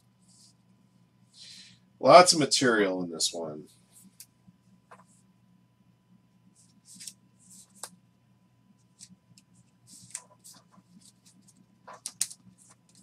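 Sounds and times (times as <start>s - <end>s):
plastic card sleeves rustling: 8.8s - 13.0s.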